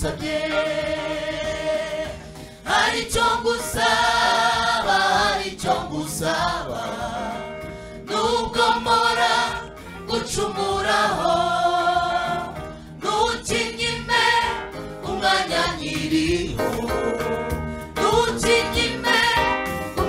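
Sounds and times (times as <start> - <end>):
gospel choir singing: 0.0 - 20.0
lead singers: 0.0 - 20.0
singers breathing: 2.2 - 2.7, 7.6 - 8.0, 12.6 - 13.0.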